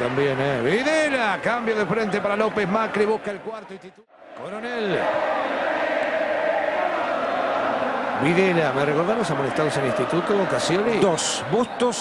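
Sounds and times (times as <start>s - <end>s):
stadium crowd chanting: 4.1s - 12.0s.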